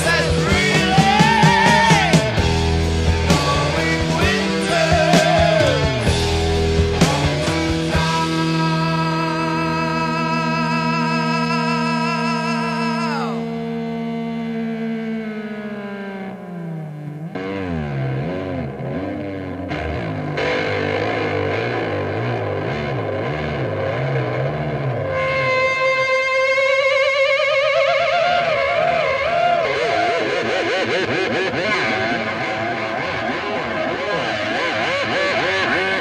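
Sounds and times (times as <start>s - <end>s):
distorted electric guitar: 0.0s - 36.0s.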